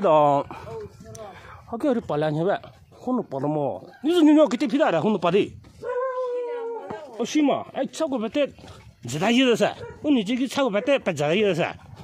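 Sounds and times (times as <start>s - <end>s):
dog howling: 5.8s - 7.2s.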